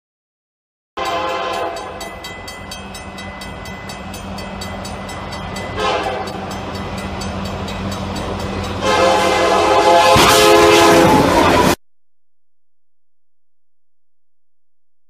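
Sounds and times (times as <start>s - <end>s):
locomotive air horn blasts: 1.0s - 2.0s, 5.8s - 6.4s, 8.8s - 11.8s.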